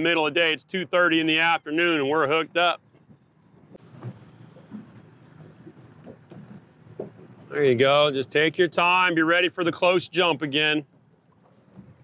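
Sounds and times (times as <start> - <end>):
water lapping at hull: 0.0 - 12.0
wind on microphone: 2.7 - 8.0, 11.6 - 12.0
soft knocks: 3.8 - 7.5.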